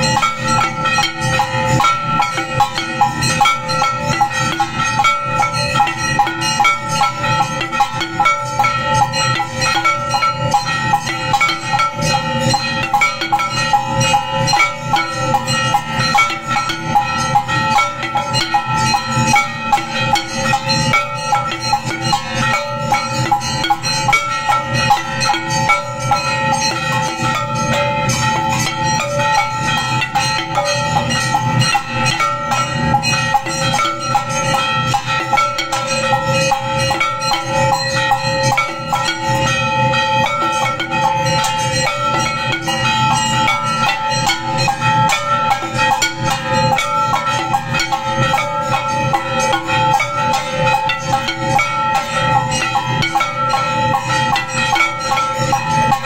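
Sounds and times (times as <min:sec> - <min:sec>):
bells ringing: 0:00.0 - 0:56.0
cymbals and drums: 0:00.0 - 0:56.0.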